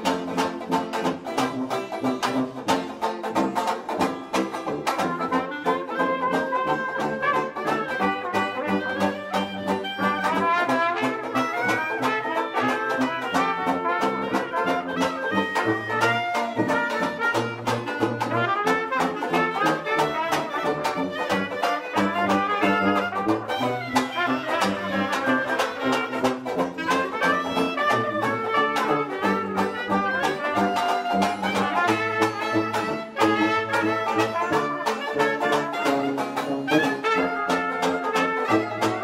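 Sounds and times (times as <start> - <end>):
banjo rhythm strum: 0.0 - 39.0
jazz band playing: 0.0 - 39.0
walking tuba bass: 0.0 - 39.0
clarinet lead line: 4.2 - 39.0.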